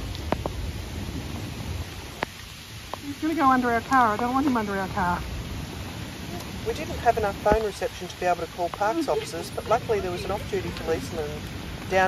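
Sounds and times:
watery outdoor hiss: 0:00.0 - 0:12.0.

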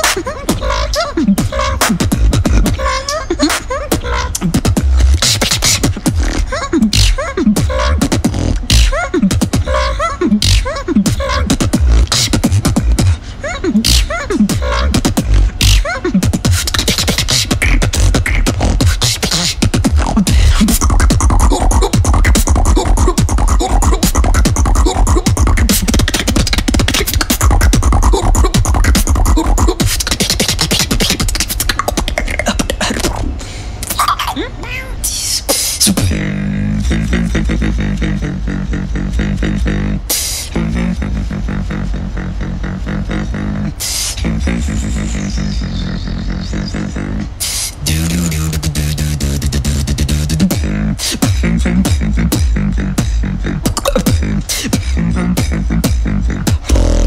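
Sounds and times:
beatboxing into a microphone: 0:00.0 - 0:57.0.

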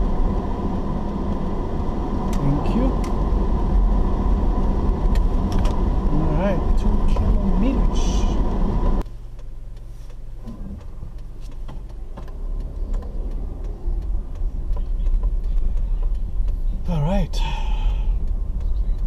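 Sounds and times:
car engine and road noise: 0:00.0 - 0:19.0
low rumble on dirt road: 0:00.0 - 0:19.0.

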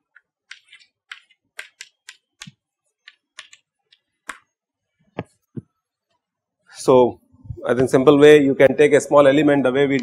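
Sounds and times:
chalk tapping on blackboard: 0:00.0 - 0:04.5.

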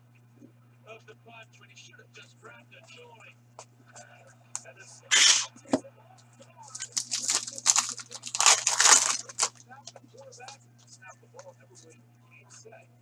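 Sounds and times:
wrapper ripping and crinkling: 0:06.7 - 0:09.6.

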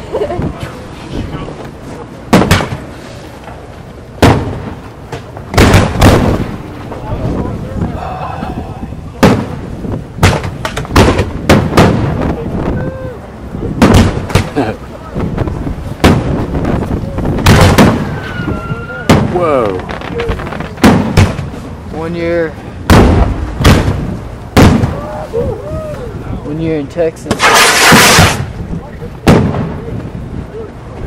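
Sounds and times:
firework shells bursting: 0:17.4 - 0:21.6, 0:27.3 - 0:28.5.

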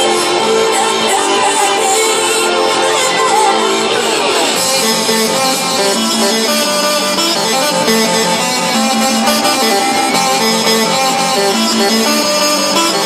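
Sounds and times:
loud fairground ride music: 0:00.0 - 0:13.0.

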